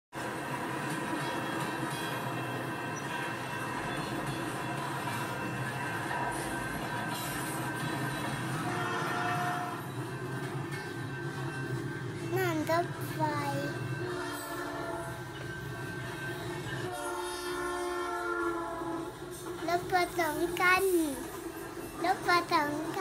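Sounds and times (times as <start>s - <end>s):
freight train rumble and clatter: 0.2s - 23.0s.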